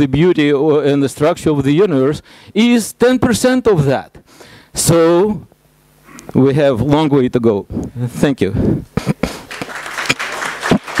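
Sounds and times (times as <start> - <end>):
audience applauding: 9.3 - 11.0.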